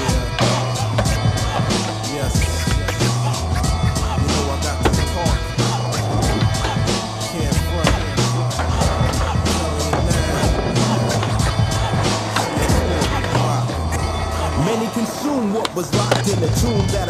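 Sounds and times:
hip-hop beat with bass and drums: 0.0 - 17.0
skateboard trucks grinding on concrete: 0.0 - 17.0
skateboard wheels rolling: 0.0 - 17.0.

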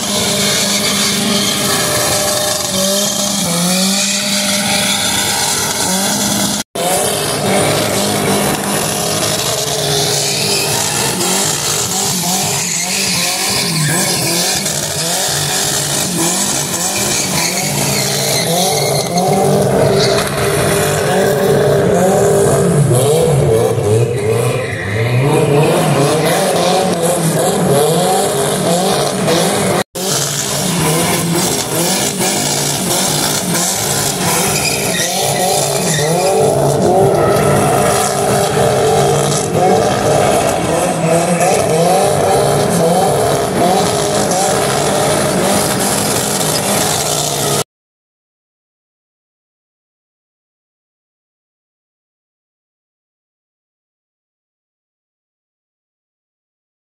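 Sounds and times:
tyres squealing: 0.0 - 23.2, 23.9 - 47.6
car engine revving: 0.0 - 47.6.

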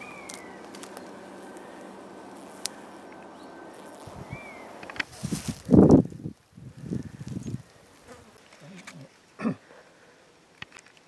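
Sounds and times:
flying insect buzzing: 0.0 - 8.6.

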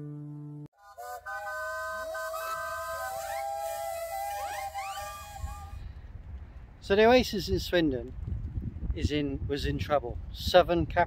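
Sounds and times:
steam whistles blowing: 0.8 - 5.9.

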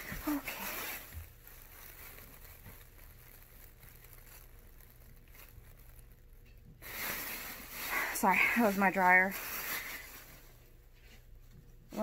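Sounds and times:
clothes dryer humming: 0.0 - 1.5, 6.6 - 12.0
plastic bag rustling: 0.0 - 12.0.

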